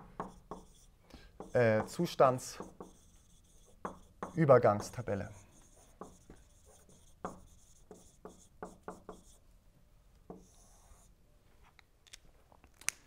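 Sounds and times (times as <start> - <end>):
marker writing on whiteboard: 0.0 - 9.4, 10.3 - 11.1
marker squeak: 0.3 - 9.4.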